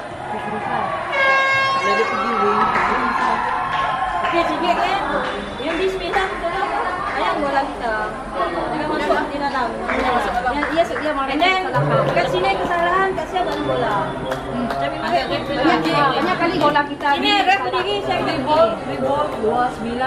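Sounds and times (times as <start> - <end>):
women chattering: 4.4 - 20.0.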